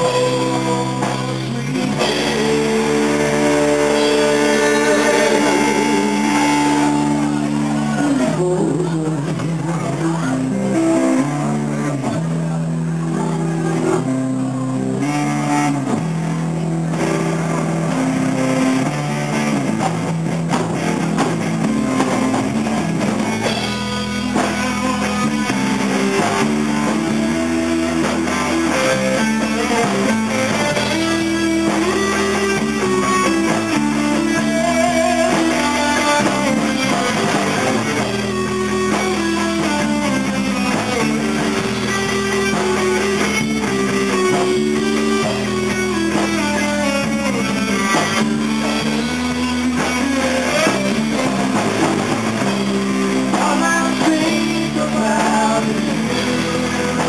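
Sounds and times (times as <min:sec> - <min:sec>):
bass guitar: 0:00.0 - 0:57.0
drum kit: 0:00.0 - 0:57.0
electric guitar: 0:00.0 - 0:57.0.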